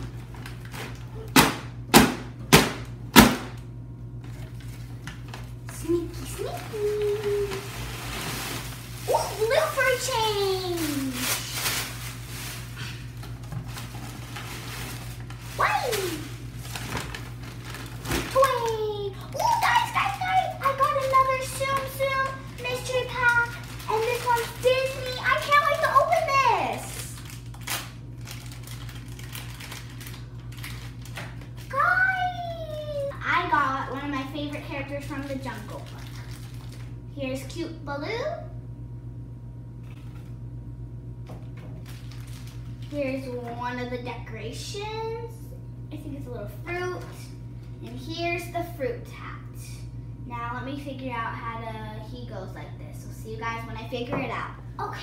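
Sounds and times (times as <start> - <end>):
plastic wrapper crinkling and tearing: 4.2 - 33.1, 35.0 - 37.0, 41.8 - 43.1
papery rustle: 6.4 - 18.8, 19.4 - 26.3, 41.8 - 43.0.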